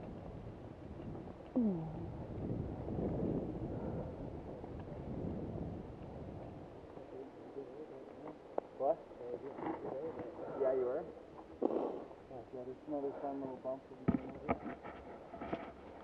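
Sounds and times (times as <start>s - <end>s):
indistinct voices: 1.5s - 2.1s
bike tyres rumbling on dirt: 2.1s - 6.9s.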